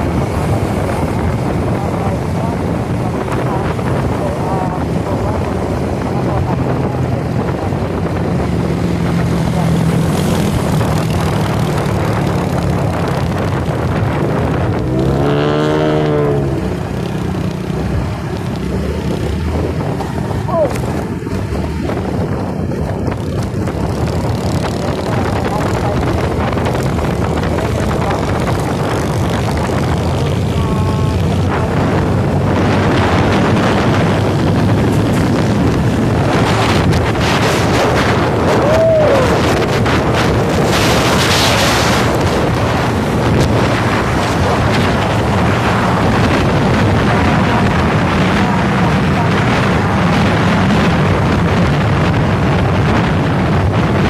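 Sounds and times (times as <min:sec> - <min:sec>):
road noise: 0:00.0 - 0:54.0
vehicle engine hum: 0:00.0 - 0:54.0
wind buffeting microphone: 0:00.0 - 0:54.0.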